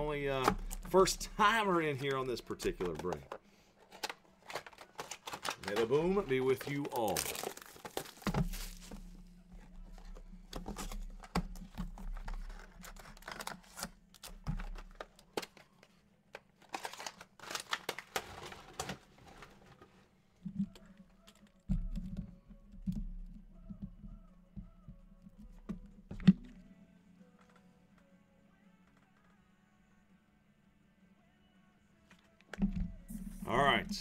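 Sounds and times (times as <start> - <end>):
cardboard rustles and clicks: 2.1 - 22.0
plastic wrap crinkling and tearing: 3.8 - 9.2, 12.4 - 19.4.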